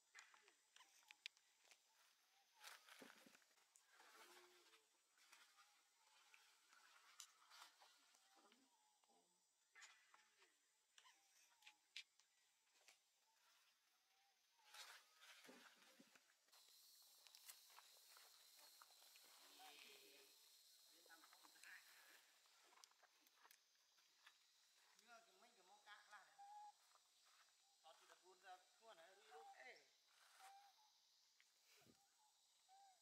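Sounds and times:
steady high hiss: 0:16.6 - 0:22.8.

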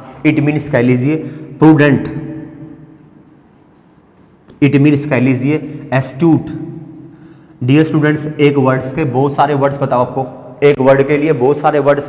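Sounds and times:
man talking: 0:00.0 - 0:02.5, 0:04.6 - 0:06.8, 0:07.6 - 0:12.0
marker scratching on whiteboard: 0:02.4 - 0:08.4.

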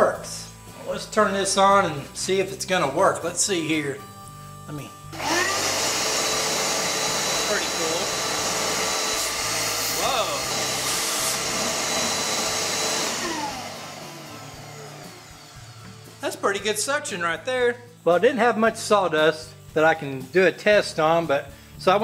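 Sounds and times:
shop vac running: 0:05.1 - 0:17.5.

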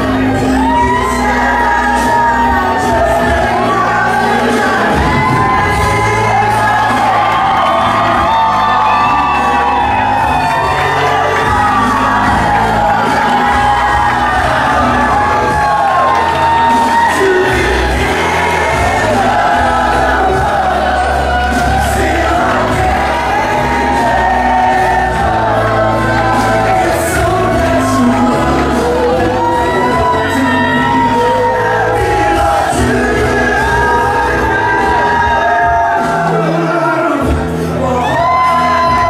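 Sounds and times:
audience whooping and cheering: 0:00.0 - 0:39.0
soul ballad over sound system: 0:00.0 - 0:39.0.

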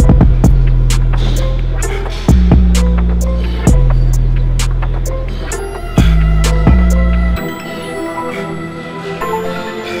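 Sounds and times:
music with droning bass and drums: 0:00.0 - 0:07.4.

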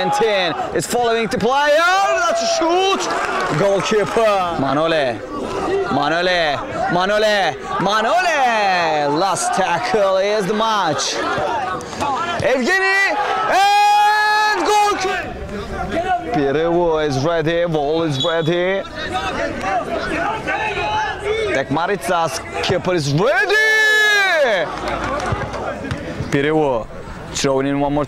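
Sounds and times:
man shouting long and drawn-out: 0:00.0 - 0:03.1, 0:05.6 - 0:16.8, 0:18.9 - 0:24.6
crowd and pitch noise: 0:00.0 - 0:28.0.

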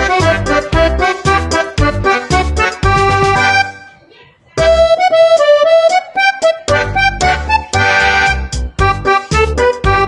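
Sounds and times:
melody over a steady beat: 0:00.0 - 0:04.0, 0:04.6 - 0:10.0.

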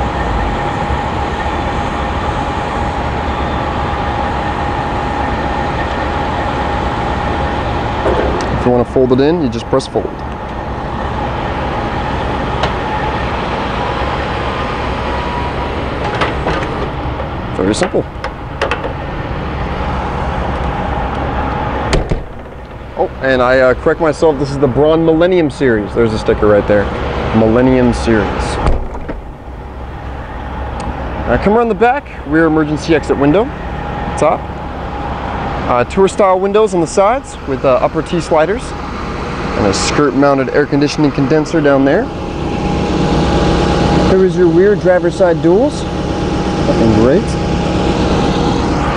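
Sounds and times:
condenser fan whirring: 0:00.0 - 0:48.9
diesel engine idling: 0:00.0 - 0:48.9
hydraulic pump humming: 0:00.0 - 0:48.9.

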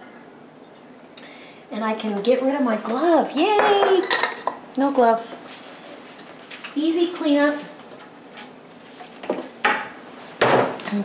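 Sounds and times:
kitchen utensils clattering: 0:03.5 - 0:04.6.

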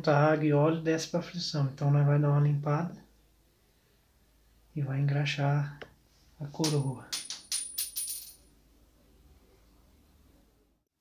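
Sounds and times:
small metal parts clinking: 0:06.6 - 0:08.5.

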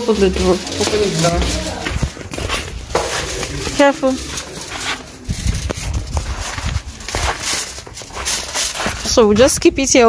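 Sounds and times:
sandal footsteps on wet tiles: 0:00.0 - 0:10.0.

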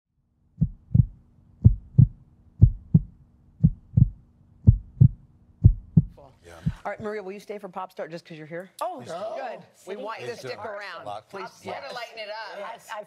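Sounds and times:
heartbeat thumps: 0:00.6 - 0:07.1.

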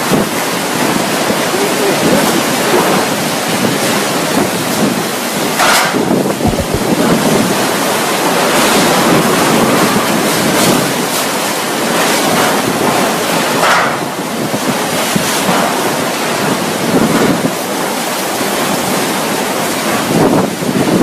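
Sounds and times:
heavy driving rain: 0:00.0 - 0:21.0
strong gusting wind: 0:00.0 - 0:21.0
wind buffeting microphone: 0:00.0 - 0:21.0.

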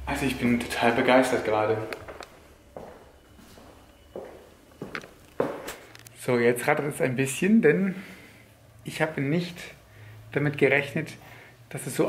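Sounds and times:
soft footsteps indoors: 0:00.2 - 0:06.8.

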